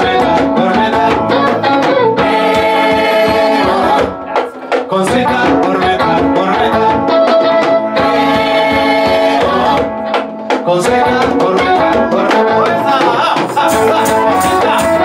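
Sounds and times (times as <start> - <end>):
drums: 0.0 - 15.0
people singing: 0.0 - 15.0.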